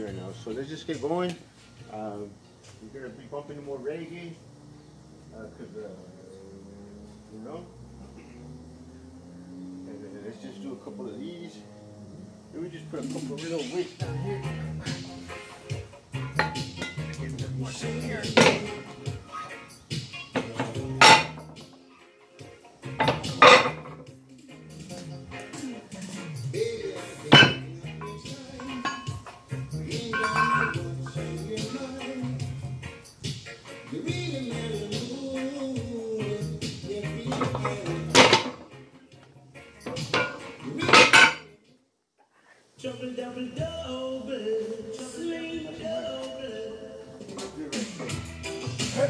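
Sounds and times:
reggae music: 0.0 - 41.7, 42.8 - 49.0
weight plates clanking: 30.2 - 30.8.

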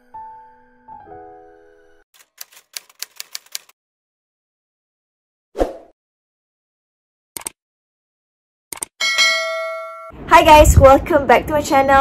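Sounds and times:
typewriter key clicks: 2.2 - 3.7.

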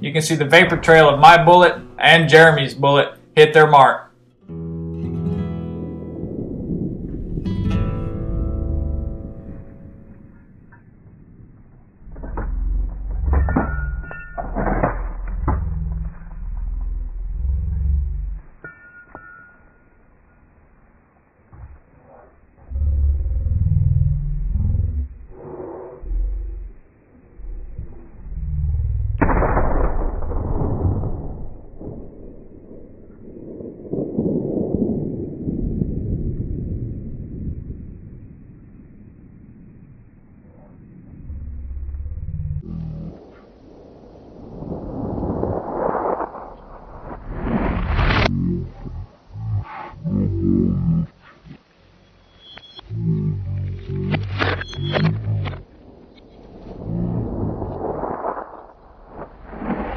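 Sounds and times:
gusty wind on microphone: 6.0 - 18.4, 27.4 - 48.8, 55.5 - 59.9
rifle shot echoing: 29.2 - 34.6.

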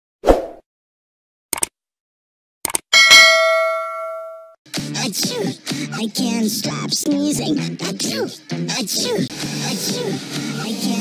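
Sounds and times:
notification bell ding: 3.0 - 4.5.

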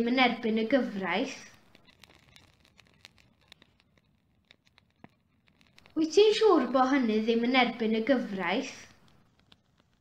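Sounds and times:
small scattered clicks: 1.4 - 6.1, 8.7 - 10.0.

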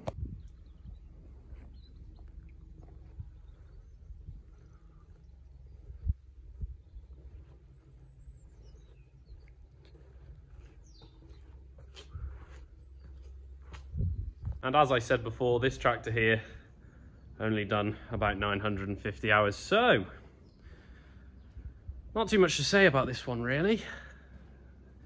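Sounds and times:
faint bird chirps: 0.0 - 14.6
steady low rumble: 0.0 - 25.0.

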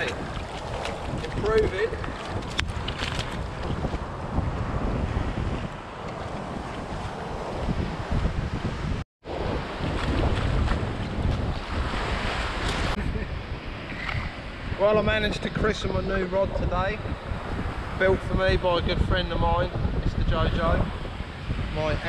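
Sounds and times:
surf washing over sand: 0.0 - 19.0
wind buffeting microphone: 0.0 - 22.0.

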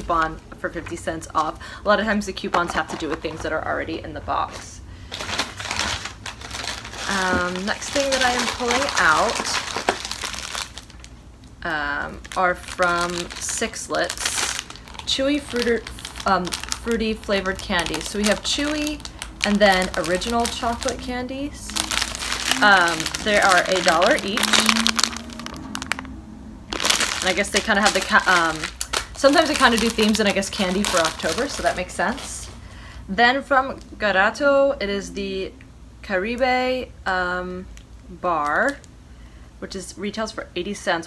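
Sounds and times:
packaging rustling and crinkling: 4.4 - 11.2, 12.1 - 26.1, 26.7 - 32.6.

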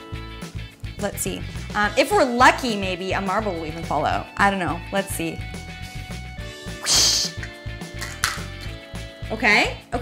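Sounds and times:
background music with beat: 0.0 - 10.0
hissing swish: 6.7 - 7.4.

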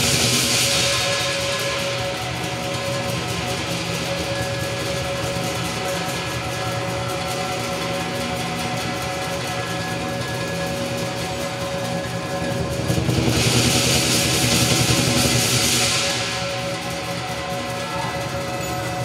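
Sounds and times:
cymbals: 0.0 - 19.0
drums: 0.0 - 19.0
gong: 0.0 - 19.0.

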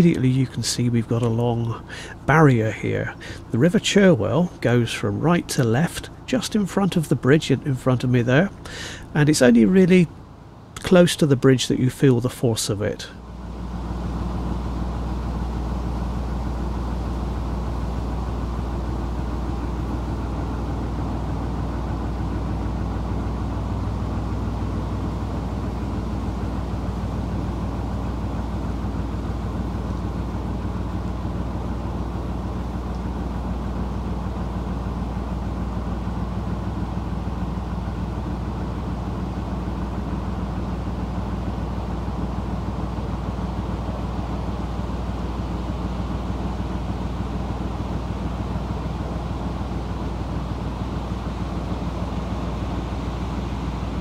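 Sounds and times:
diesel engine humming: 0.0 - 54.0.

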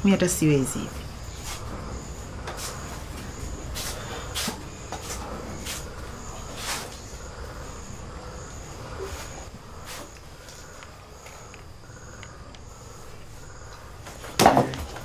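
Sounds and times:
crickets chirping: 0.0 - 15.0
low room hum: 0.0 - 15.0.

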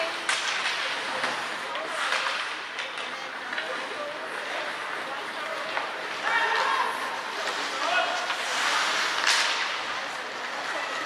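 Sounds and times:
ice rink background noise: 0.0 - 11.0
skate blades scraping ice: 0.0 - 11.0.

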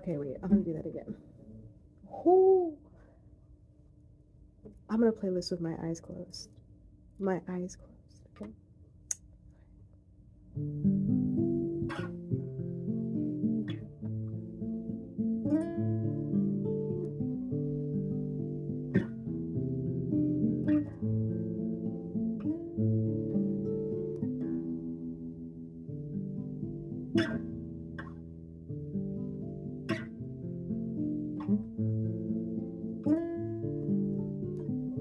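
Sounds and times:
acoustic guitar notes and chords: 0.0 - 2.8, 10.5 - 35.0
guitar string clicks: 11.9 - 12.2, 27.2 - 27.4.

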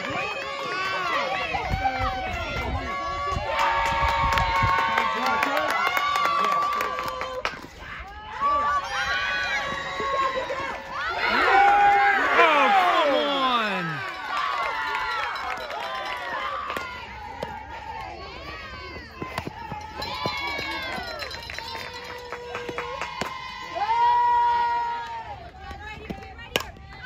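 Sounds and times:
crowd shouting and cheering: 0.0 - 27.0.

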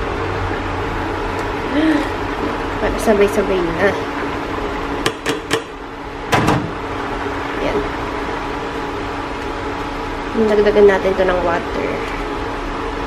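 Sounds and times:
appliance hum: 0.0 - 13.0.

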